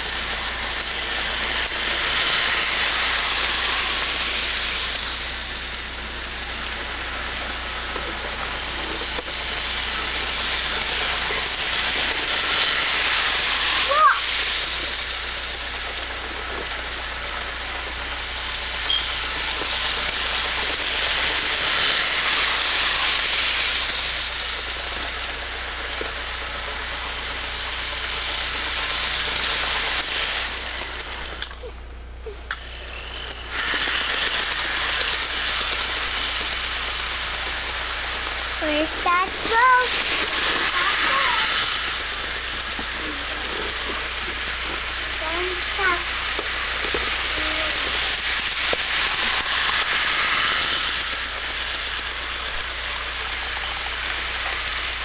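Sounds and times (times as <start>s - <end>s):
toy train rattling on track: 0.0s - 55.0s.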